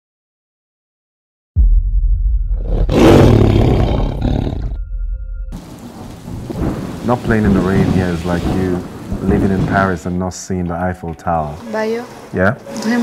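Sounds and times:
deep rumble of thunder: 1.6s - 10.5s
rain hissing: 5.6s - 13.0s.

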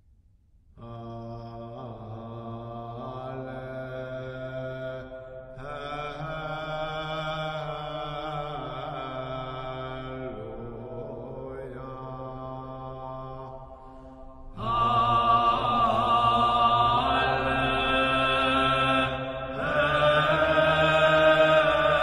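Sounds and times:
slow chanting style music: 0.7s - 22.0s.

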